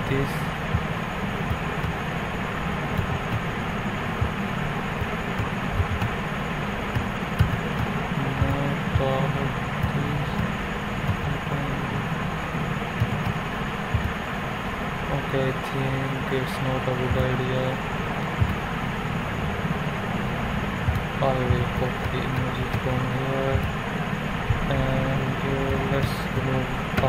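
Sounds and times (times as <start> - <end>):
low hum: 0.0 - 27.0
steady rumbling background noise: 0.0 - 27.0.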